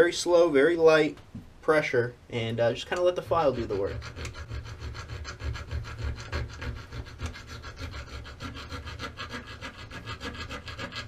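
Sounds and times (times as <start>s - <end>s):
file rasping on metal: 3.2s - 11.0s.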